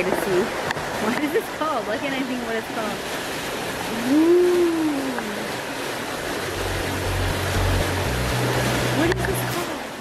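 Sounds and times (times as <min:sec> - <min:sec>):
water rushing: 0:00.0 - 0:10.0
low bass background music: 0:06.2 - 0:09.6.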